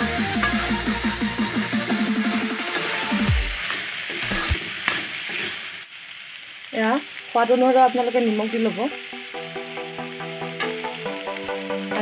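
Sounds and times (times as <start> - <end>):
vegetables sizzling in oil: 0.0 - 12.0
spatula stirring in wok: 0.2 - 5.7.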